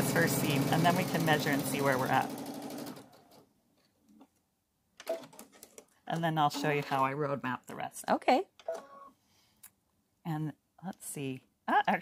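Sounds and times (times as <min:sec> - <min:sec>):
sewing machine stitching: 0:00.0 - 0:03.4.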